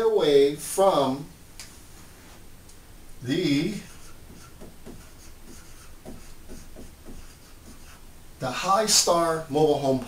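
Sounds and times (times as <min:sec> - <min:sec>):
marker writing on whiteboard: 0:03.3 - 0:08.1.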